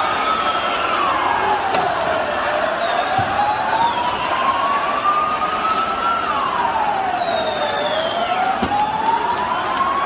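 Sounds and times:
large crowd noise: 0.0s - 10.0s
police siren wailing: 0.0s - 10.0s.

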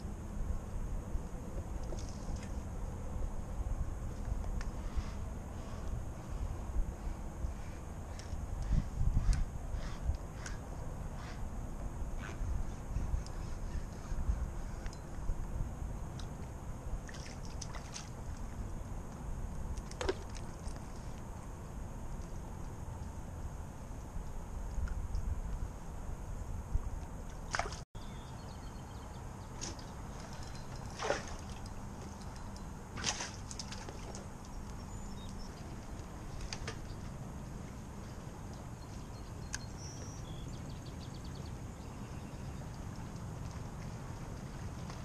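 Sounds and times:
wind rumble: 0.0s - 28.3s
water sloshing around kayak: 17.0s - 18.4s, 29.6s - 32.3s, 32.9s - 34.4s.

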